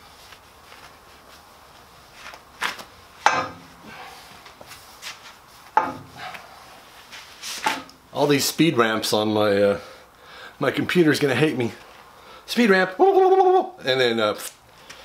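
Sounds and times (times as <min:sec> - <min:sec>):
knocks and clunks of handling: 0:03.2 - 0:03.7, 0:05.8 - 0:06.2.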